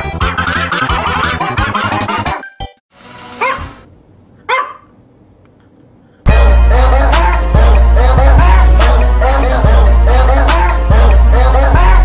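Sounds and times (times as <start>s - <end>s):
dog barking: 3.4s - 3.8s, 4.5s - 4.9s.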